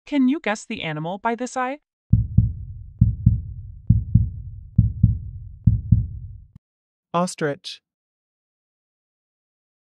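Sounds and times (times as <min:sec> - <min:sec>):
heartbeat double thumps: 0:02.1 - 0:06.6.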